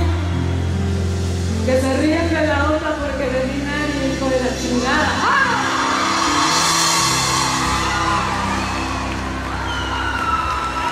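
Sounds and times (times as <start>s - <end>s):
live band holding a chord: 4.0s - 10.9s
crowd cheering and whooping: 5.0s - 10.9s.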